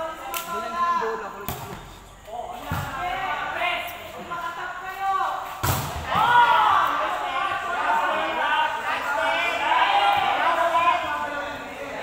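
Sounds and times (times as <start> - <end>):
volleyball players calling out: 0.0 - 12.0.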